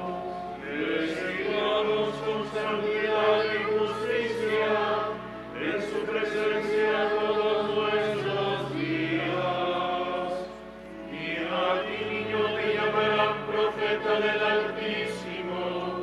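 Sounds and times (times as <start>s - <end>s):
low steady accompaniment: 0.0s - 16.0s
voices chanting long notes: 0.0s - 16.0s.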